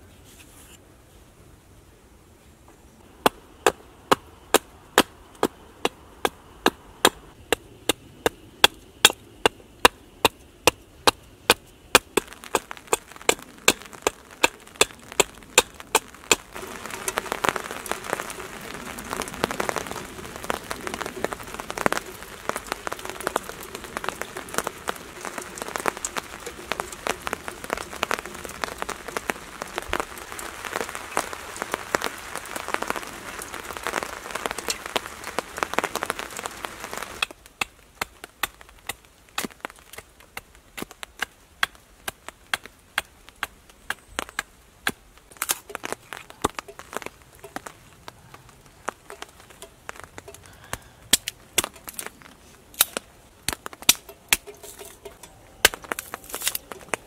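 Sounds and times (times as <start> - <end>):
rain pattering on a tarp: 10.2 - 57.0.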